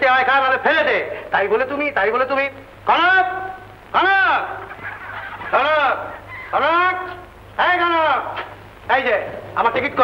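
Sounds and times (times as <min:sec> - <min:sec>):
loud rising and falling calls: 0:04.6 - 0:06.9.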